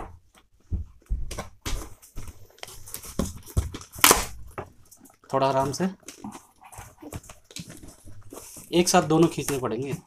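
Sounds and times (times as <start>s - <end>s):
plastic wrapping rustling: 1.3s - 10.0s
polystyrene and cardboard scraping: 7.8s - 10.0s.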